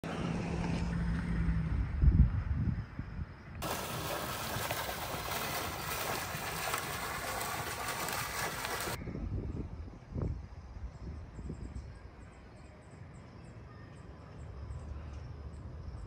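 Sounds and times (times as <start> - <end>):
fountain jet splashing: 3.6 - 9.0.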